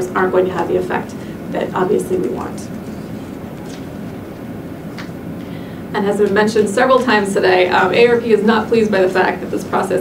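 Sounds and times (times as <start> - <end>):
low room rumble: 0.0 - 10.0.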